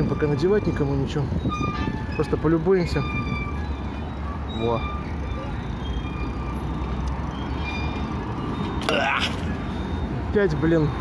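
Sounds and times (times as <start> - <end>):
traffic: 0.0 - 11.0
wind: 0.0 - 11.0.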